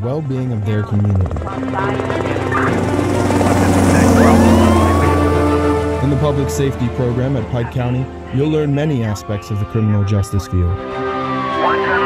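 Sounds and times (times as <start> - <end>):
helicopter rotor chop: 0.2 - 9.3
background music: 0.9 - 12.0
rising tone sweep: 1.8 - 9.0.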